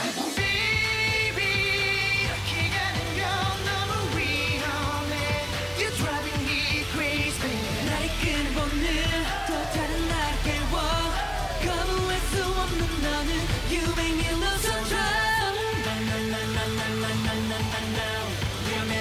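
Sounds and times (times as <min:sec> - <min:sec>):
male vocals over pop backing track: 0:00.0 - 0:19.0
deep bass line: 0:00.4 - 0:19.0.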